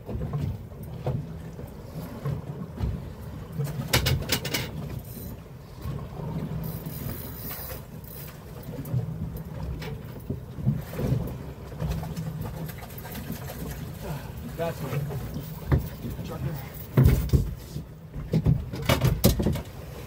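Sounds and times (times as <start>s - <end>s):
water lapping boat hull: 0.0s - 20.0s.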